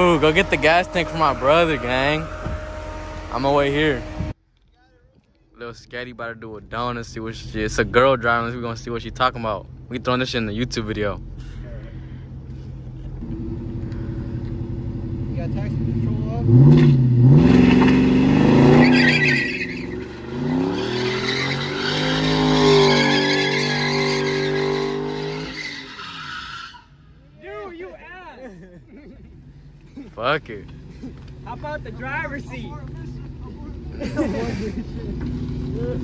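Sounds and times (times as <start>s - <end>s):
tyre squeal: 0.0s - 4.3s, 17.5s - 27.0s
car engine revving: 0.0s - 4.4s, 6.6s - 27.1s, 30.4s - 36.0s.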